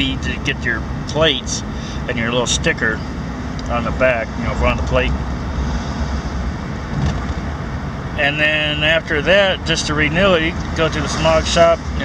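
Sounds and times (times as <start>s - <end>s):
car engine and tyre rumble: 0.0s - 12.0s
road noise hiss: 0.0s - 12.0s.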